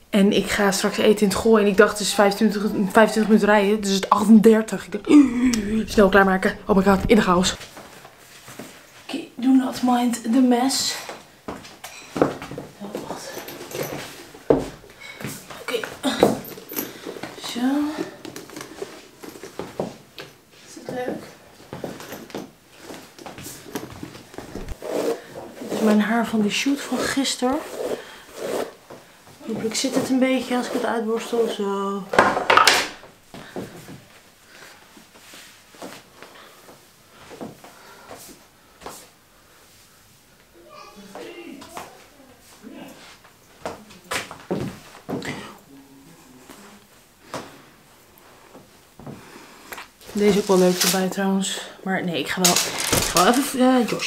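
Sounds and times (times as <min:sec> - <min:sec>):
wordless voice sounds: 0:00.4 - 0:07.6
knocks and rustling: 0:23.4 - 0:24.8, 0:52.4 - 0:54.0
loud scraping rustle: 0:24.4 - 0:26.0, 0:50.2 - 0:51.1.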